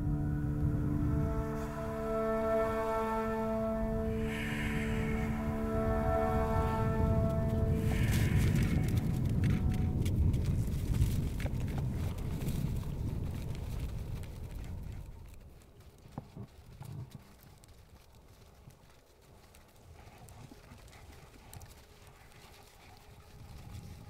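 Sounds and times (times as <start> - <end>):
held music tones: 0.0 - 10.0
low rumbling outdoor ambience: 0.0 - 24.0
reindeer clicks and knocks: 7.9 - 24.0.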